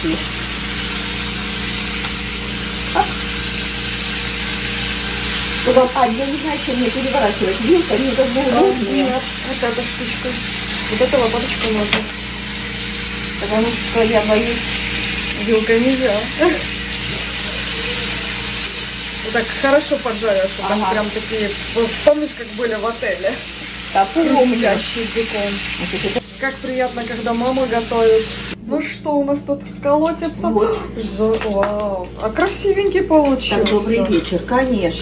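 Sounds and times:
bacon sizzling in frying pan: 0.0s - 28.6s, 30.1s - 35.0s.

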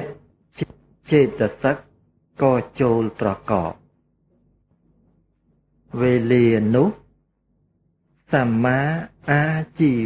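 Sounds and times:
man reciting a word: 0.0s - 3.8s, 8.3s - 10.0s.

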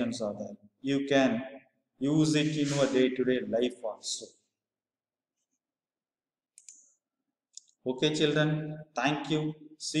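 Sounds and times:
man speaking: 0.0s - 4.4s, 7.8s - 10.0s
computer mouse clicks: 6.5s - 7.0s.

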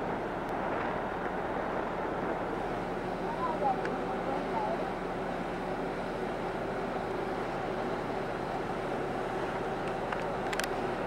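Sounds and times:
ship machinery: 0.0s - 11.0s
wind: 0.0s - 11.0s.

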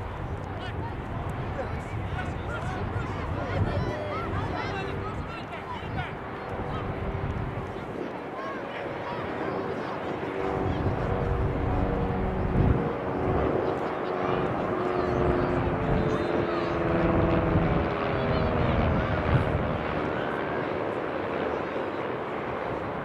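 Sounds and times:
droning engine passing by: 0.0s - 21.8s.

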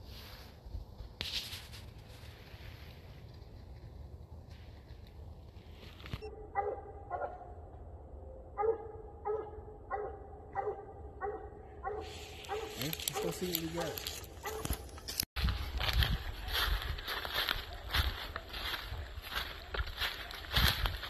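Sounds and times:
outdoor rustling noise: 0.0s - 6.3s, 12.0s - 21.0s
dog barking: 6.3s - 7.6s, 8.5s - 13.5s, 14.4s - 14.8s.

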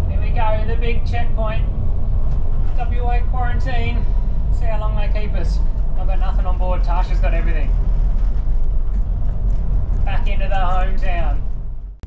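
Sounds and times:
bus engine and road rumble: 0.0s - 12.0s.

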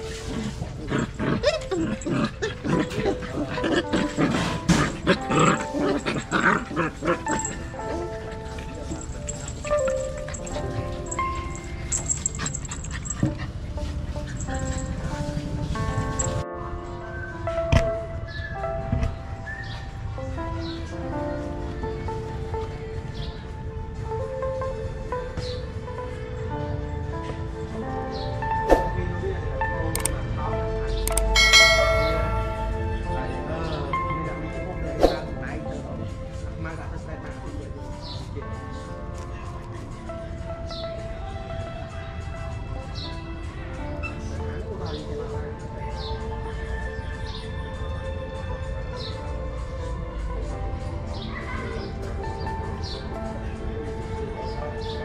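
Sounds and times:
puppies yipping and barking: 0.0s - 17.3s, 31.1s - 33.0s
background music with held notes: 0.0s - 55.0s
bell ringing out: 31.1s - 33.0s.

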